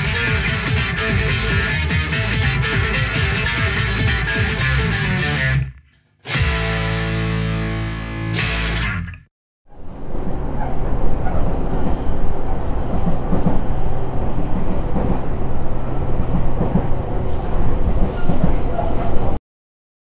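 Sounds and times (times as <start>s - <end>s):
rock band chord ringing: 0.0s - 5.7s, 6.3s - 9.1s
train interior rumble: 9.7s - 19.4s.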